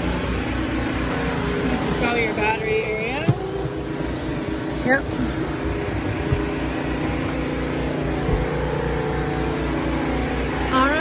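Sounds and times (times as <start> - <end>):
motor running steadily: 0.0 - 11.0.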